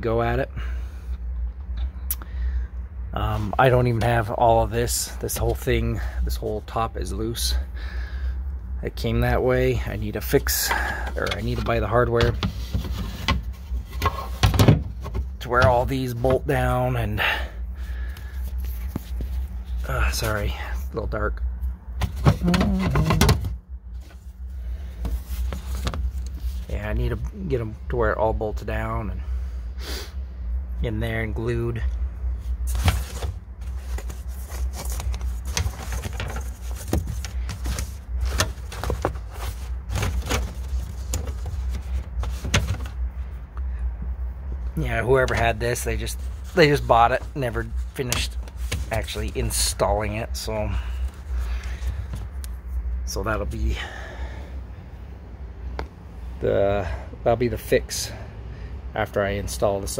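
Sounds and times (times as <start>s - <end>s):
steady low rumble: 0.0s - 59.9s.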